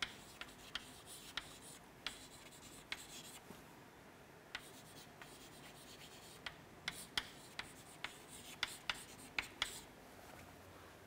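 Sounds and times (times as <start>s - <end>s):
chalk scratching on chalkboard: 0.0s - 3.4s, 4.6s - 9.9s
chalk tapping on board: 0.0s - 3.4s, 4.6s - 9.9s.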